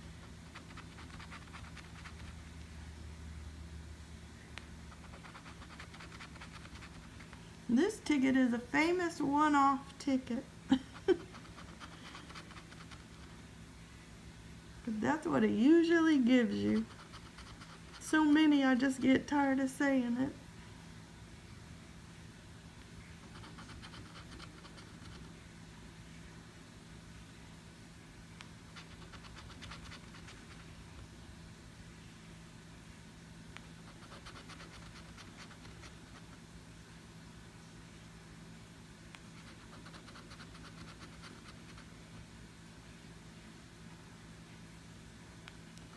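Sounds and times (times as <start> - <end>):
coin scratching lottery ticket: 0.3 - 2.4, 4.9 - 7.1, 23.2 - 25.2, 33.8 - 36.3, 39.4 - 41.9.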